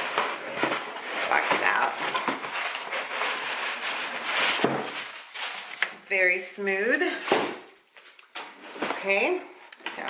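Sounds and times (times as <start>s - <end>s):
cardboard box scraping and rustling: 0.0s - 5.8s.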